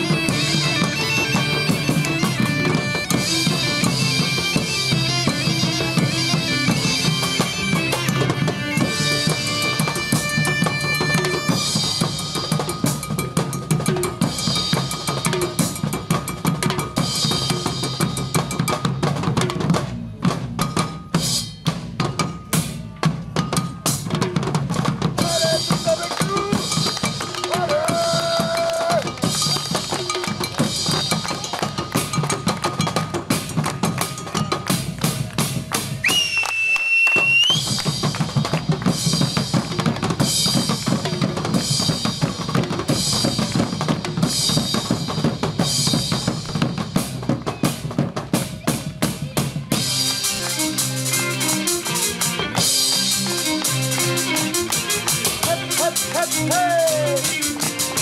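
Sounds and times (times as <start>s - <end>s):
bagpipe drone and melody: 0.0s - 12.2s, 50.2s - 58.0s
driving drums: 0.0s - 58.0s.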